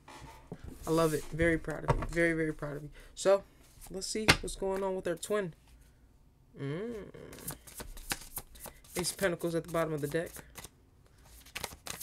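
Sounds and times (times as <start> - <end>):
cards being shuffled: 7.3 - 12.0.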